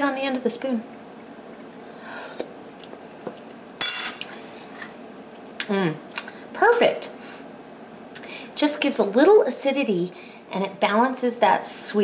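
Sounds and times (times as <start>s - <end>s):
metal spoon clinking: 3.8s - 4.3s.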